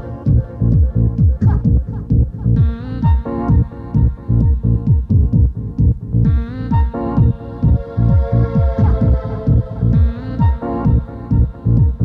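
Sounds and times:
electronic dance music: 0:00.0 - 0:05.5, 0:06.2 - 0:12.0
deep bass: 0:00.0 - 0:12.0
held synth chords: 0:00.0 - 0:12.0
kick drum: 0:00.0 - 0:12.0.

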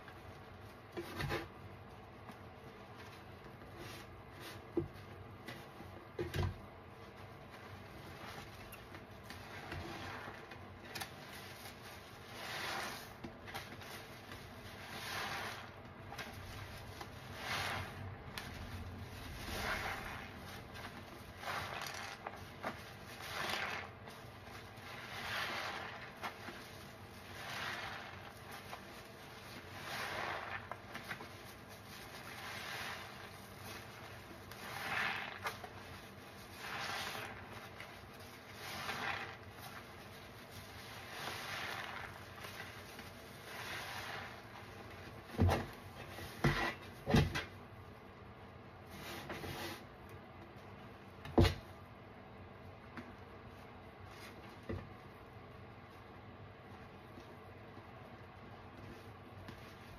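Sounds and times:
sponge squelching in soapy water: 0:00.0 - 0:48.1, 0:52.7 - 0:59.9.

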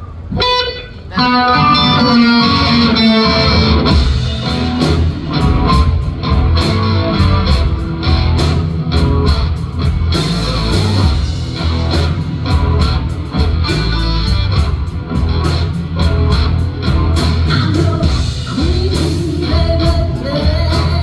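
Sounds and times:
blues band playing: 0:00.0 - 0:21.0.

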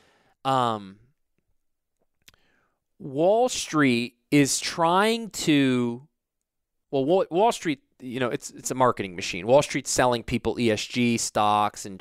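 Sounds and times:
soft breath: 0:02.3 - 0:02.8.

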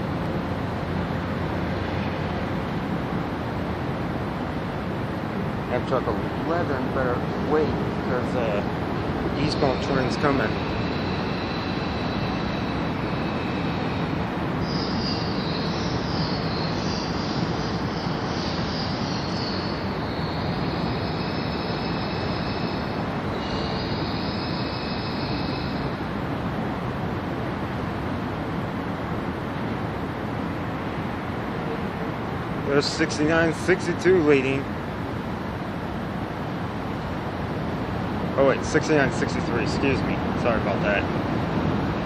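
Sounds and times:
train wheels squealing: 0:09.4 - 0:26.0.

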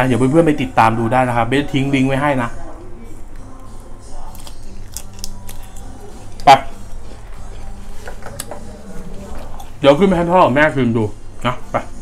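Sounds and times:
chewing and crunching shrimp: 0:03.3 - 0:09.8.

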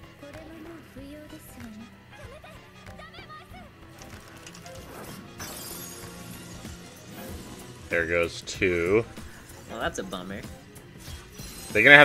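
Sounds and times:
soundtrack music with low notes: 0:00.0 - 0:12.0.

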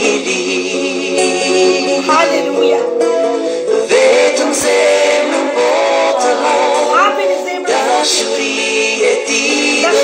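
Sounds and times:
person singing worship song: 0:00.0 - 0:02.8, 0:03.4 - 0:10.0
instrumental backing: 0:00.0 - 0:10.0.

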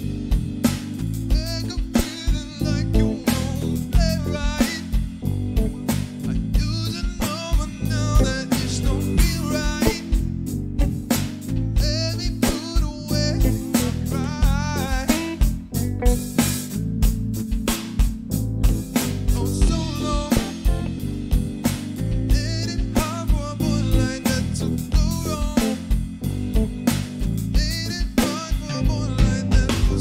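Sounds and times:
sustained melody notes: 0:00.0 - 0:26.9
electric guitar: 0:00.0 - 0:30.0
electronic drum beat: 0:00.0 - 0:30.0
low bass line: 0:00.0 - 0:30.0.

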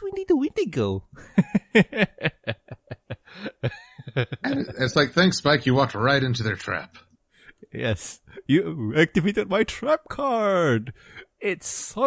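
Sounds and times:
person laughing in quick bursts: 0:01.3 - 0:04.8.

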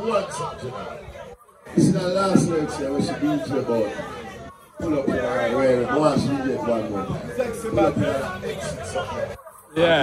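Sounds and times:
man talking into a microphone: 0:01.7 - 0:04.1, 0:04.8 - 0:09.0.

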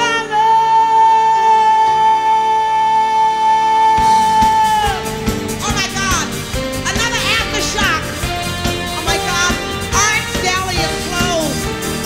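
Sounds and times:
live band chord: 0:00.0 - 0:12.0.

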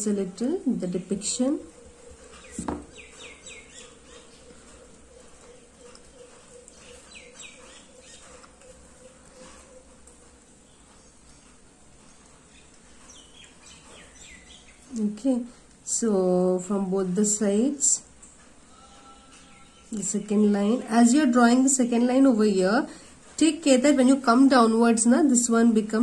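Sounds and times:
bird chirps: 0:01.7 - 0:10.0.

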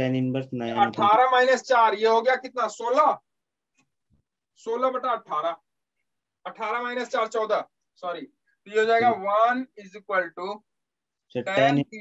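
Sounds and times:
man talking: 0:00.0 - 0:03.2, 0:06.5 - 0:10.6, 0:11.4 - 0:12.0.

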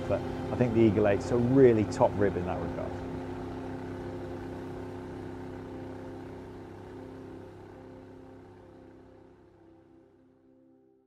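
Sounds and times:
outboard engine humming: 0:00.0 - 0:10.8.

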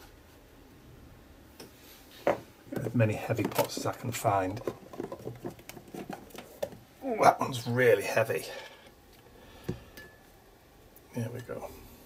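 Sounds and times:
plastic pots rustling: 0:02.1 - 0:09.2.

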